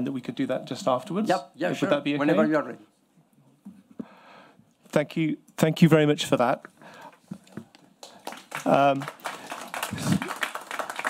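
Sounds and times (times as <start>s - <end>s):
audience clapping: 7.0s - 11.0s.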